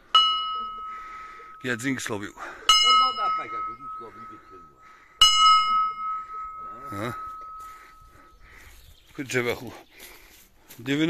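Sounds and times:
large hanging bell ringing: 0.0 - 8.4.

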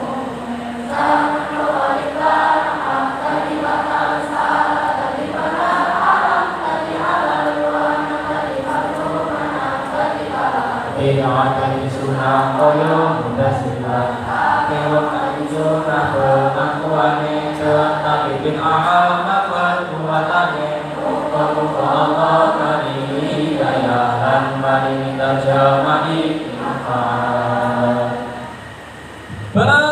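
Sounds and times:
choir singing: 0.0 - 29.1.

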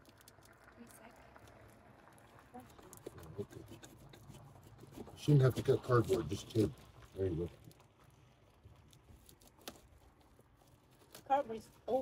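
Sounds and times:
faint rustling of package: 5.9 - 12.0.

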